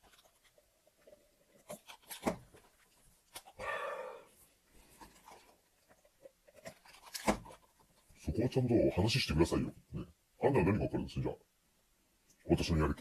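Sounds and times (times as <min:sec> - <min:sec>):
short breathy noise: 0:03.6 - 0:04.4.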